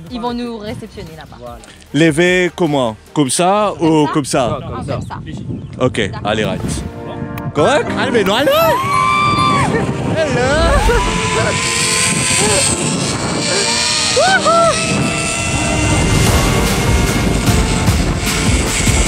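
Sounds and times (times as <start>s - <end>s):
wind rumble on microphone: 3.8s - 19.0s
people whooping: 8.4s - 9.8s, 10.4s - 12.8s, 13.5s - 16.2s.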